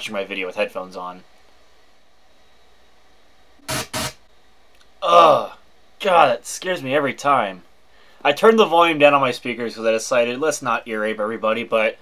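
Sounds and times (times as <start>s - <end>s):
loud bursts of static: 3.6s - 4.3s.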